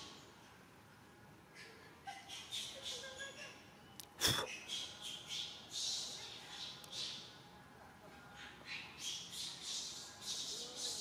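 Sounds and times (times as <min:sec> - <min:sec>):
high outdoor hiss: 0:09.0 - 0:11.0.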